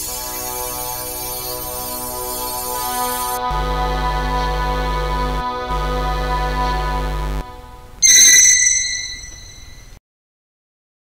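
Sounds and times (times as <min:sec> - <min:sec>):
bright shimmering ringing tones: 0:08.0 - 0:10.0.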